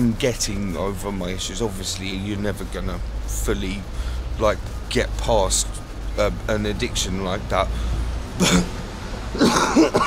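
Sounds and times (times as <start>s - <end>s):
man coughing: 8.4s - 8.8s, 9.4s - 10.0s
man laughing: 8.4s - 8.8s, 9.4s - 10.0s.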